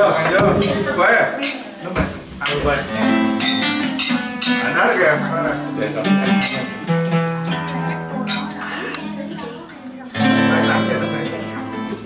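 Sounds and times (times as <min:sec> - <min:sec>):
acoustic guitar strumming chords: 0:02.4 - 0:12.0
wine glasses clinking: 0:03.3 - 0:04.7.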